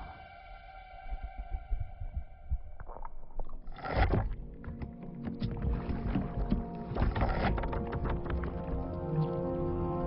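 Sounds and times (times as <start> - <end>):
tense music: 0.0 - 3.4
creaks and clicks: 2.7 - 9.6.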